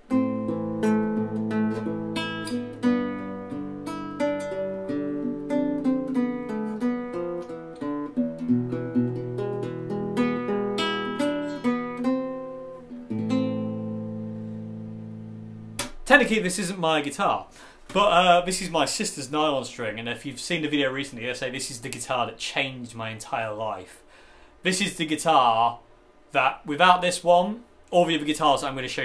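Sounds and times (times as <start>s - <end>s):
fingerpicked classical guitar: 0.0s - 16.1s.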